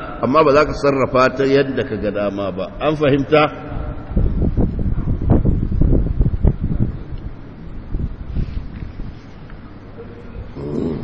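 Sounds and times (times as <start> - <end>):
wind buffeting microphone: 3.6 - 9.4.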